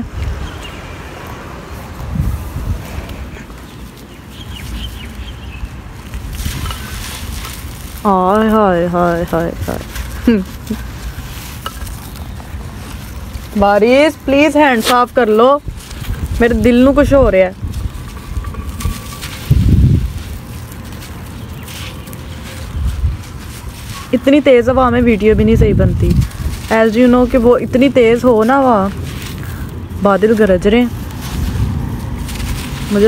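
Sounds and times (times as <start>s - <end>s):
wind buffeting microphone: 0.0s - 21.7s, 22.4s - 33.0s
gritty crackles of crumbling brick: 3.6s - 24.4s.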